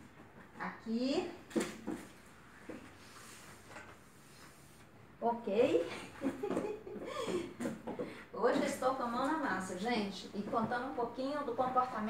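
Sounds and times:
woman chuckling: 0:05.9 - 0:07.7.

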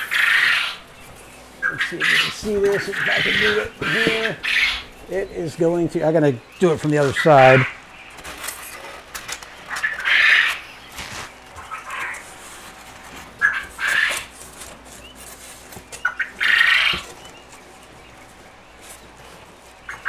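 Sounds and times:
foam board squeaking and rubbing: 0:09.8 - 0:20.0.

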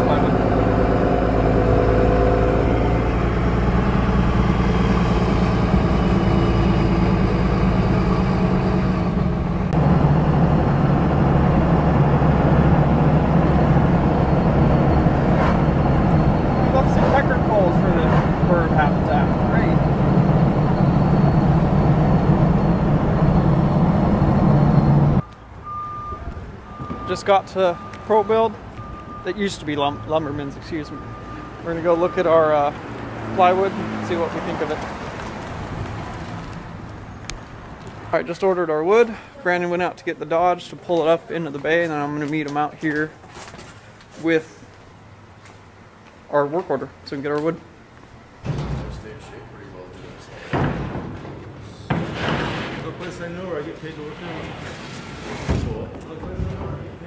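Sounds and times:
truck engine and road noise: 0:00.0 - 0:57.0.

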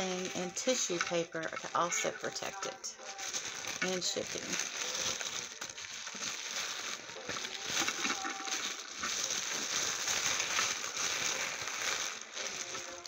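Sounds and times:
tissue paper crinkling: 0:00.0 - 0:13.0.

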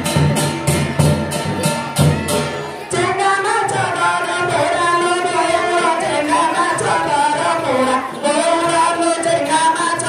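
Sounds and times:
high-pitched voice singing folk song: 0:02.0 - 0:10.0.

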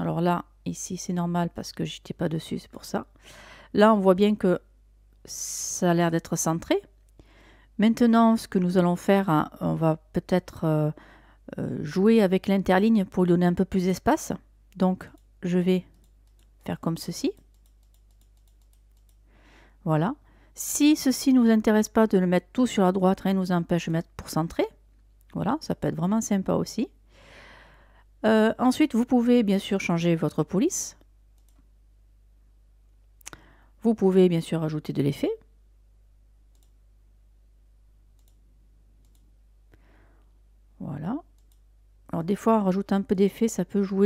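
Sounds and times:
low steady hum: 0:00.0 - 0:44.0
faint computer clicks: 0:15.9 - 0:16.6, 0:17.4 - 0:19.2, 0:31.3 - 0:31.7, 0:36.5 - 0:36.8, 0:38.2 - 0:38.4, 0:39.0 - 0:39.3, 0:41.3 - 0:41.7.

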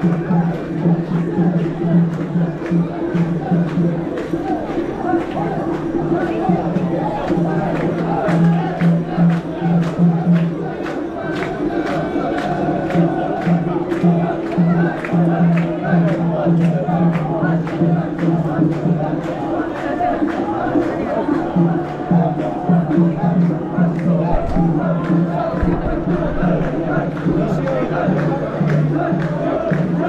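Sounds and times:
crowd chanting in unison: 0:00.0 - 0:30.0
festival crowd noise: 0:00.0 - 0:30.0.

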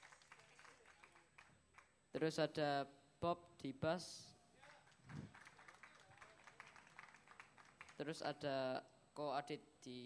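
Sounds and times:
small audience clapping: 0:00.0 - 0:02.0, 0:04.6 - 0:08.2.

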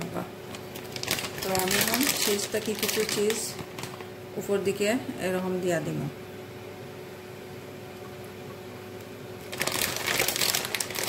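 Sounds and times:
plastic packaging crinkling: 0:00.5 - 0:04.2, 0:09.4 - 0:11.0.

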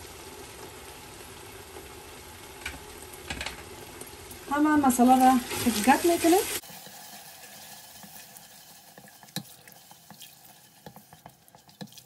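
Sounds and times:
faint sizzle: 0:00.0 - 0:12.0
spatula scraping sauce in pot: 0:06.6 - 0:12.0.

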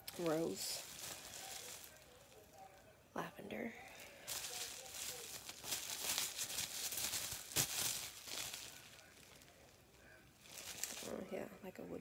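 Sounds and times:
bubble wrap crinkling and crackling: 0:00.0 - 0:11.6.

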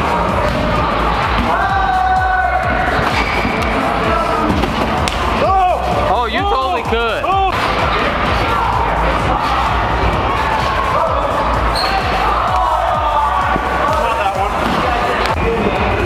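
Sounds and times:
background music with a beat: 0:00.0 - 0:16.0.

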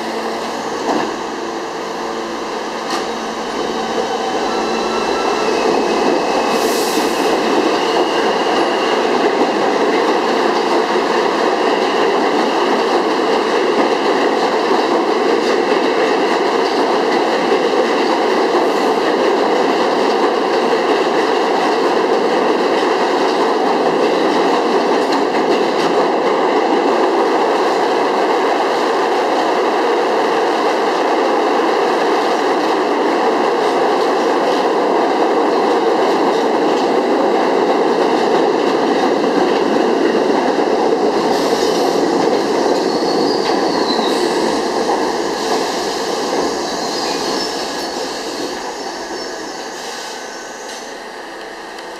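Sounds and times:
train wheels rumbling on rails: 0:00.0 - 0:51.9
high wheel squeal: 0:03.6 - 0:07.1, 0:42.8 - 0:44.4.

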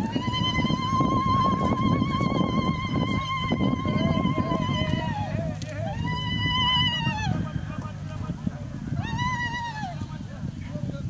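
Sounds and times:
high-pitched trilling ululation: 0:00.0 - 0:10.2
low background noise: 0:00.0 - 0:11.0.

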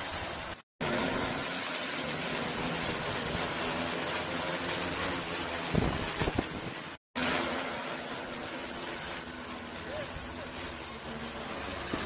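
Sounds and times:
drone rotors humming: 0:00.0 - 0:12.0.

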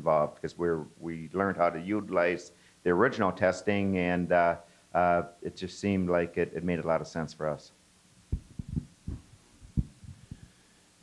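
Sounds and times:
microphone handling thumps: 0:08.3 - 0:10.5.

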